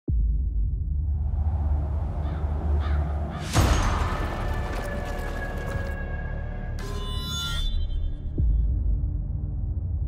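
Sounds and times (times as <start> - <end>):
faint crow caws: 2.1 - 5.9, 6.8 - 8.2.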